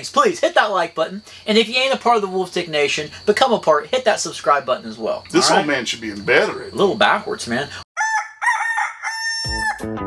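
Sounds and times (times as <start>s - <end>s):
rooster crowing: 8.0s - 9.9s
music with bass and guitar: 9.5s - 10.0s.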